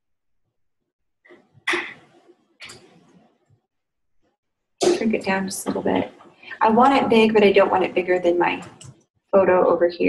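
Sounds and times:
person speaking: 4.8 - 10.0.

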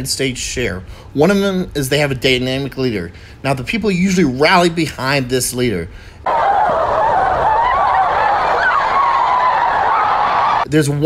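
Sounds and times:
crowd of women wailing: 6.2 - 10.6.

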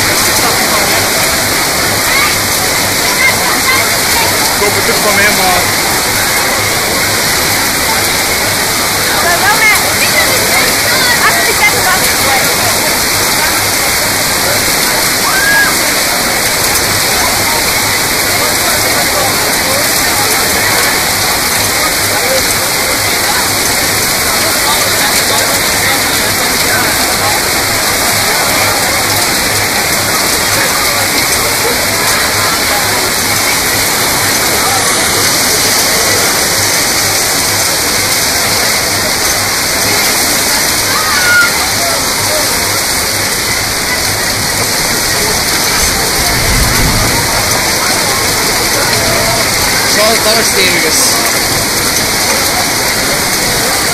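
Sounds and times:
heavy rain pouring: 0.0 - 53.9.

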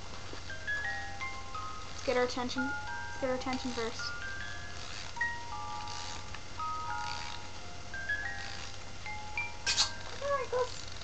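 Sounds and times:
electronic toy lullaby: 0.5 - 11.0.

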